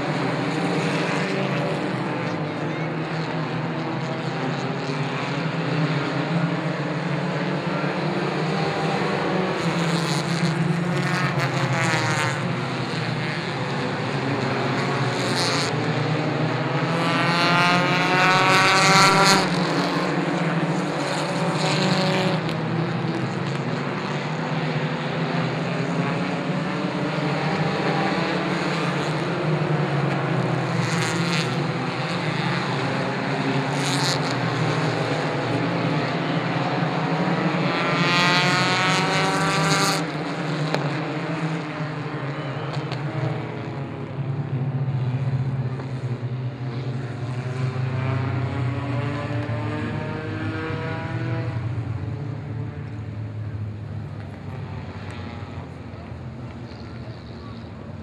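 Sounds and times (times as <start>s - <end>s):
race car engines at high revs: 0.0s - 58.0s.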